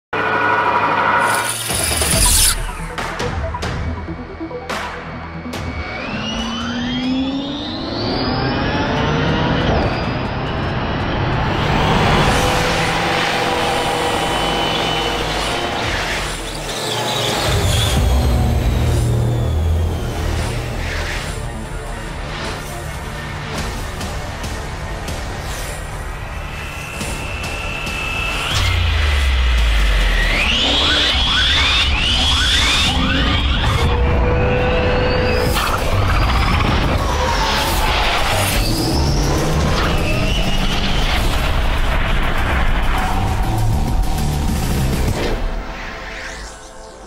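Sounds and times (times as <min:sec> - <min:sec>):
high electric whine: 0:00.2 - 0:03.2, 0:25.5 - 0:33.9.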